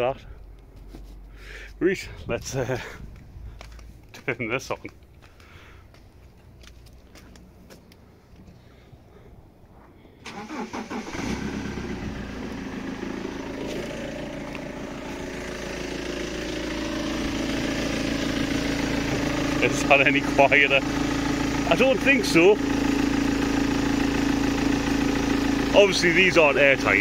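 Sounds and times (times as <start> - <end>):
diesel engine cranking and idling: 0.0 - 27.0.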